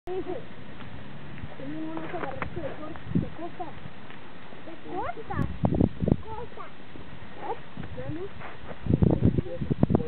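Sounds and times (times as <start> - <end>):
people's voices: 1.5 - 3.9, 4.5 - 5.5.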